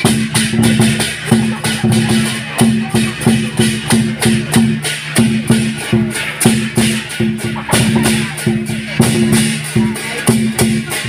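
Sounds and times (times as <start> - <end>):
drum cymbals and gong percussion: 0.0 - 11.0.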